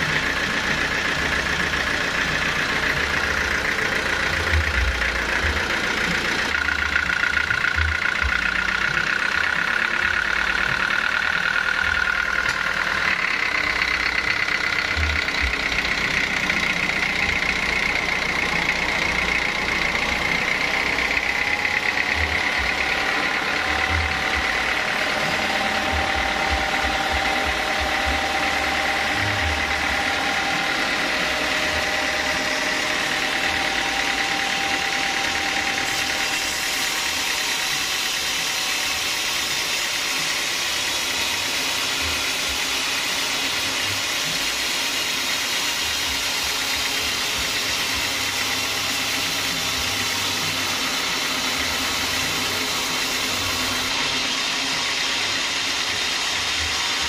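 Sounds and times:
band saw whine: 0.0s - 57.0s
diesel engine clatter: 0.0s - 57.0s
saw blade hissing through log: 31.2s - 57.0s.

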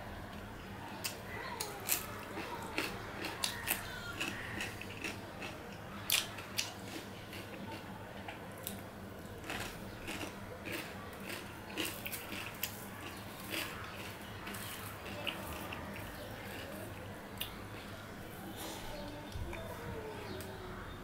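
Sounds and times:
person chewing cucumber: 0.3s - 18.0s.

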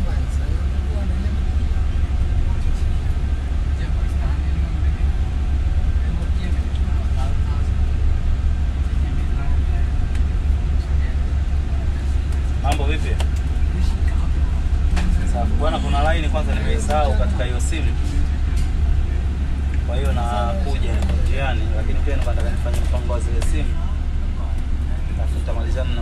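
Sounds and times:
vehicle rumble on road: 0.0s - 26.0s
voices: 0.0s - 26.0s.

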